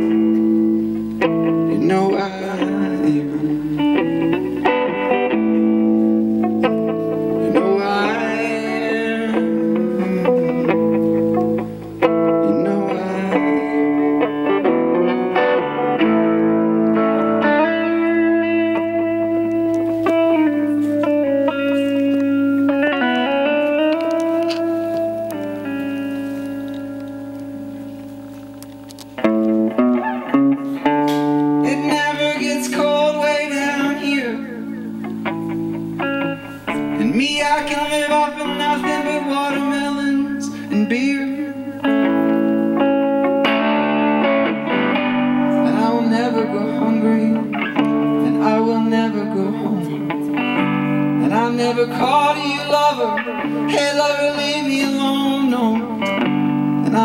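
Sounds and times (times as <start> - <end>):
electric guitar strumming chords: 0.0 - 57.0.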